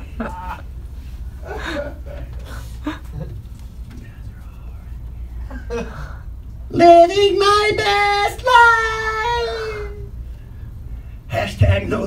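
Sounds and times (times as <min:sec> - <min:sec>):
low steady hum: 0:00.0 - 0:12.0
man laughing and gasping: 0:01.4 - 0:03.4, 0:05.4 - 0:06.3.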